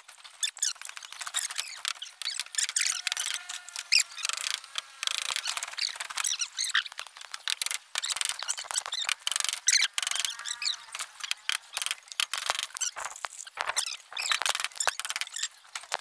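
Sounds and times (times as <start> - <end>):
high squeaks and chirps: 0.3 - 7.0, 7.6 - 16.0.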